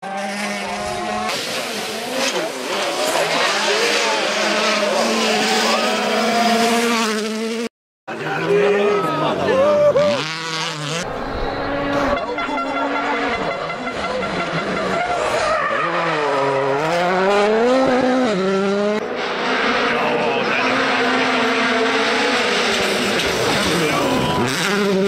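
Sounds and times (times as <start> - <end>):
rally car engines at high revs: 0.0 - 25.0.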